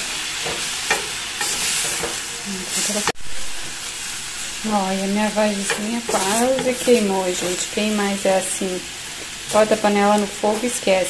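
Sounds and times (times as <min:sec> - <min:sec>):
vegetables sizzling in a pot: 0:00.0 - 0:11.0.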